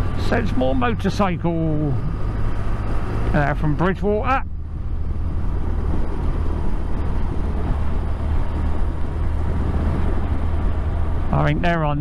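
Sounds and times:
motorcycle engine hum: 0.0 - 12.0
wind and road noise: 0.0 - 12.0.

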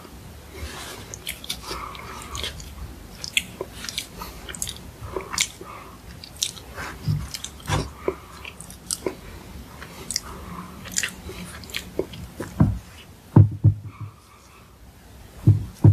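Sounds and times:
chewing with wet mouth clicks: 1.1 - 12.6
dull low knocks: 12.6 - 14.2, 15.4 - 15.9.

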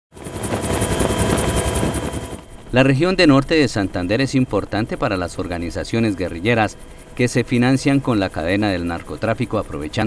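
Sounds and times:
helicopter engine and rotor: 0.1 - 10.0.

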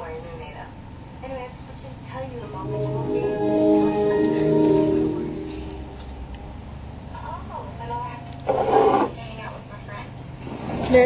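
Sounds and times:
woman speaking: 0.0 - 3.3.

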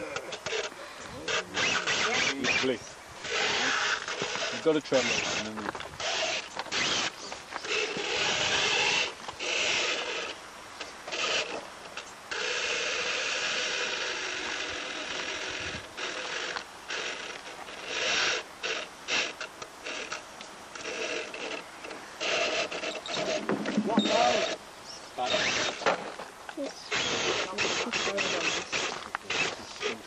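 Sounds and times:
toy car electric motor whining: 0.0 - 24.6, 25.2 - 26.0, 26.6 - 30.0.

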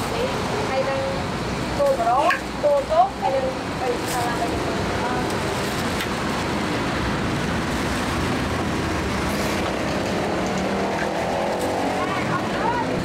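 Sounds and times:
steady loud rushing noise: 0.0 - 13.0
faint voices: 11.8 - 13.0.

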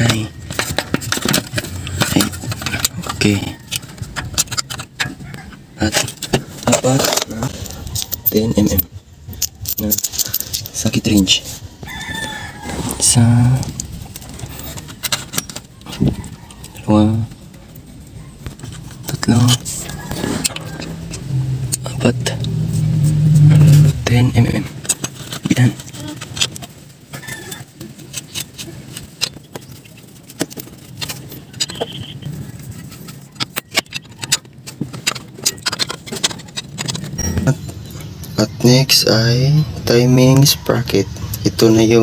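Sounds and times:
vehicle engine hum: 12.8 - 42.0.

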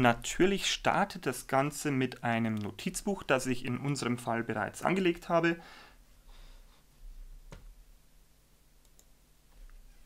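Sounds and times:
computer mouse clicks: 8.8 - 9.1.

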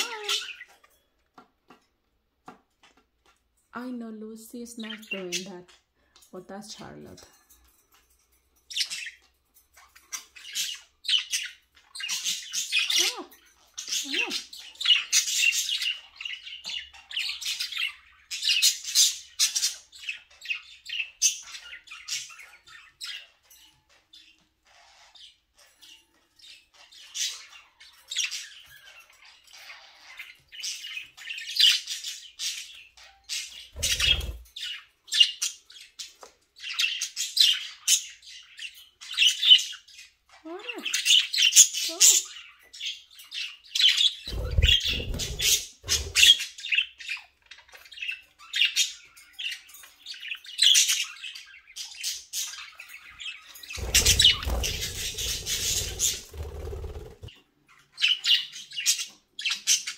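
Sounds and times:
budgerigars chattering and chirping: 0.0 - 0.9, 8.6 - 59.9.

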